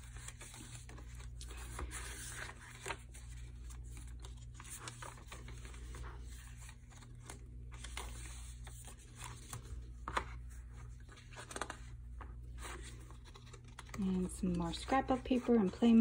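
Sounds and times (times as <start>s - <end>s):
pages turning: 0.0s - 16.0s
paper rustling: 0.0s - 16.0s.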